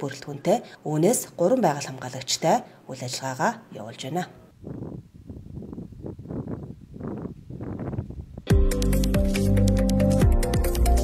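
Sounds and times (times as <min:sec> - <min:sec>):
wind noise: 0:04.5 - 0:08.6.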